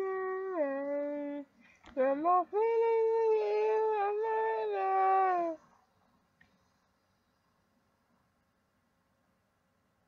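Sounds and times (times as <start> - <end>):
woman singing unaccompanied: 0.0 - 5.7.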